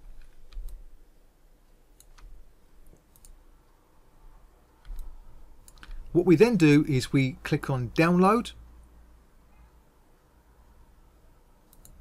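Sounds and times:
computer mouse clicks: 0.0s - 0.8s, 1.9s - 3.4s, 4.8s - 6.1s, 11.6s - 12.0s
low background hum: 0.0s - 12.0s.

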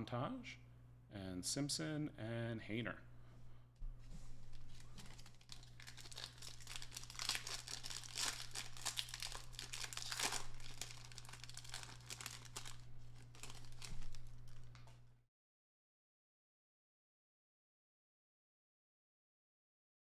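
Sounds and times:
cards shuffling: 4.2s - 15.0s
foil wrapper crinkling and tearing: 4.4s - 15.0s.

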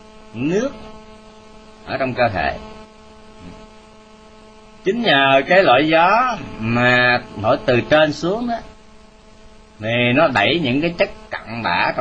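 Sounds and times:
electrical hum: 0.0s - 12.0s
man speaking: 0.3s - 0.9s, 1.9s - 2.7s, 4.9s - 8.7s, 9.8s - 12.0s.

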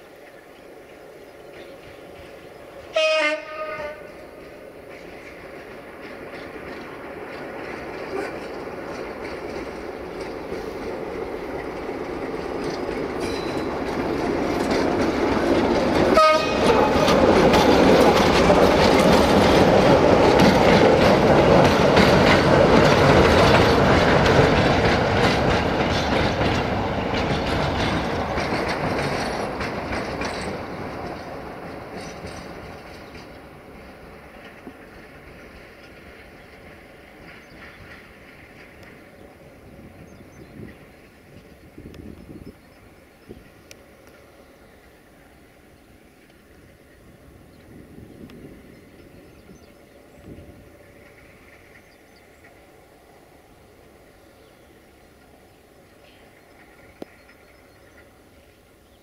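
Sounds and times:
train wheels on rails: 0.0s - 59.0s
locomotive horn: 2.9s - 4.2s, 16.0s - 17.2s.

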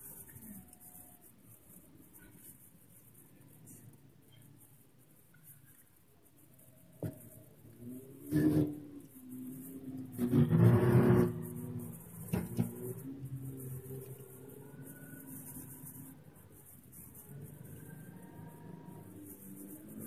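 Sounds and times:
car engine droning: 7.0s - 20.0s.

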